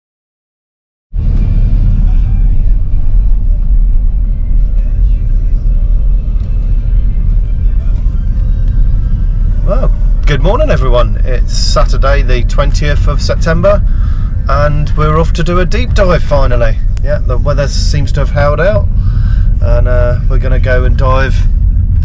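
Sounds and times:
car road and engine rumble: 1.2s - 22.0s.

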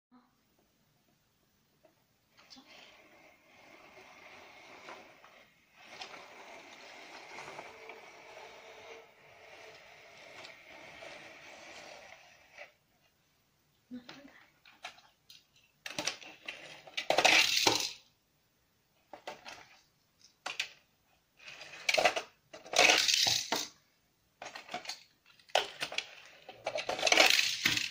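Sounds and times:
plastic case scraping on tile floor: 2.3s - 12.9s, 15.9s - 18.0s, 21.4s - 23.8s, 24.4s - 27.9s
metal toy cars clattering: 14.7s - 18.0s, 21.4s - 23.8s, 24.4s - 27.9s.

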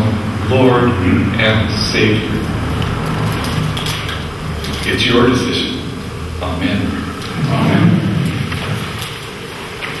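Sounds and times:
steady room noise: 0.0s - 10.0s.

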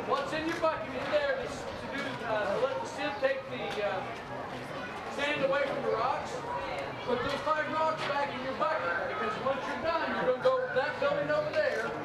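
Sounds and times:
children chattering: 0.1s - 12.0s.

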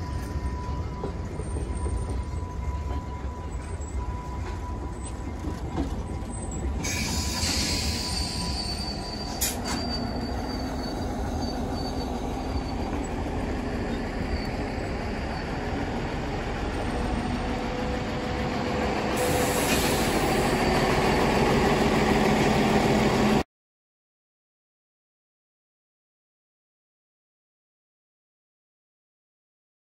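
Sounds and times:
railcars rumbling past: 0.0s - 23.4s
high wheel squeal: 4.8s - 15.9s, 19.1s - 21.6s.

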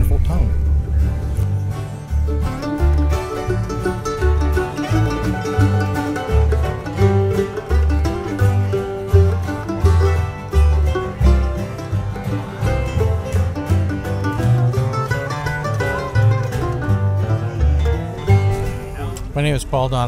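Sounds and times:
banjo and guitar picking: 0.0s - 19.4s
bass line: 0.0s - 20.0s.

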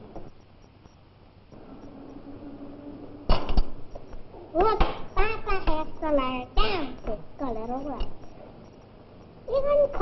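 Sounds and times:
faint hiss and low hum: 0.0s - 10.0s
sharp knocks: 4.6s - 5.8s.

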